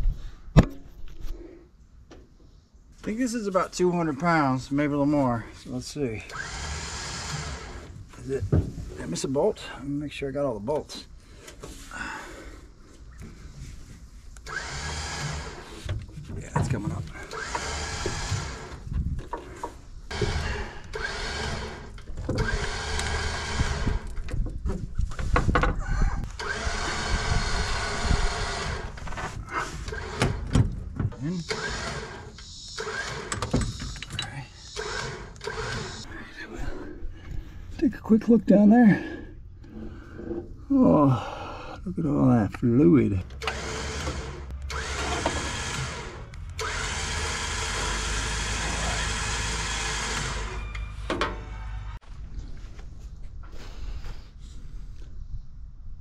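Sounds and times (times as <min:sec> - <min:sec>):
rope rasping and straining: 0:05.6 - 0:09.2, 0:12.8 - 0:36.9.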